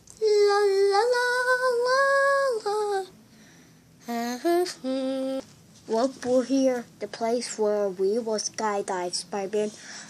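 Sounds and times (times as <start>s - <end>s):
child humming a tune: 4.0s - 5.5s.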